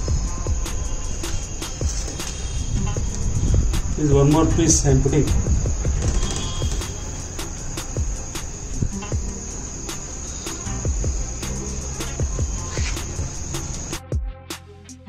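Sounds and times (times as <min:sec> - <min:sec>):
crickets trilling: 0:00.0 - 0:14.0.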